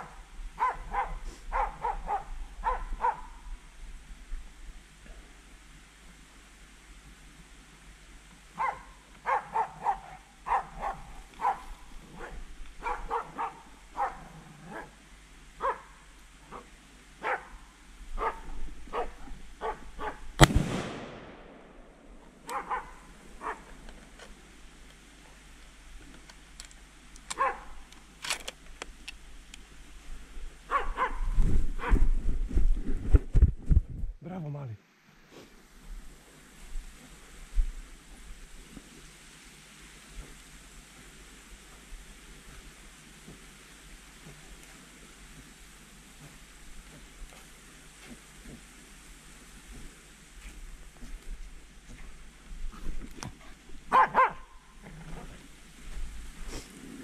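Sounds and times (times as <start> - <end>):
hounds baying and barking: 0.0 - 3.5, 8.6 - 15.0, 15.6 - 20.3, 22.4 - 23.9, 27.3 - 27.8, 30.7 - 32.0, 53.3 - 55.4
gunshot: 20.4 - 22.0.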